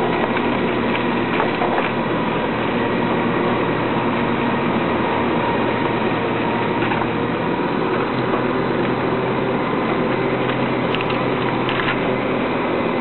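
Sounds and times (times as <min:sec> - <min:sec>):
garbage truck engine humming: 0:00.0 - 0:13.0.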